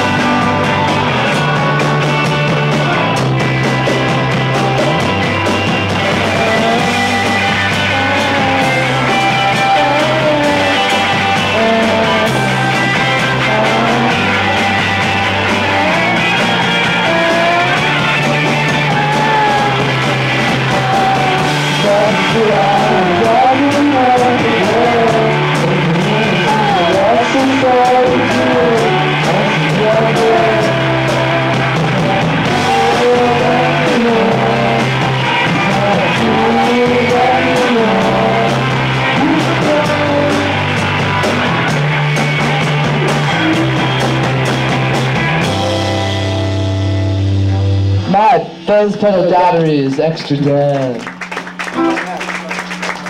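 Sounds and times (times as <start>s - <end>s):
drums and cymbals: 0.0s - 47.1s
bass guitar: 0.0s - 53.0s
electric guitars: 0.0s - 53.0s
man singing: 6.0s - 40.9s.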